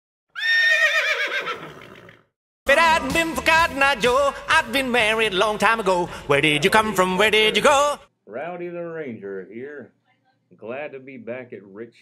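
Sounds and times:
horse whinnying: 0:00.3 - 0:02.3.

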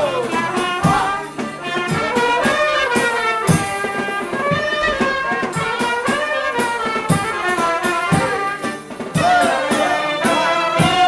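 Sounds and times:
deep drum beats: 0:00.0 - 0:11.0.

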